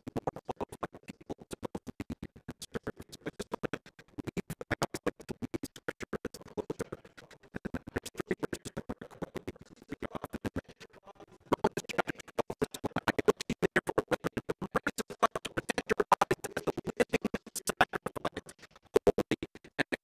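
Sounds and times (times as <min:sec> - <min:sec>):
garbled man's voice clicking: 0:00.0 - 0:20.0.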